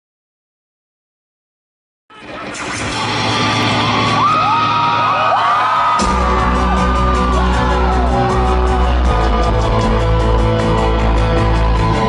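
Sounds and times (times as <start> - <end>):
rock band playing: 2.5 - 12.0.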